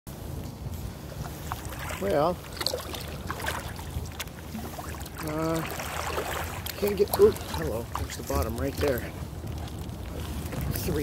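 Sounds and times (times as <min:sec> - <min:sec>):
kayak moving through water: 0:00.1 - 0:11.0
water drips and splashes: 0:01.0 - 0:11.0.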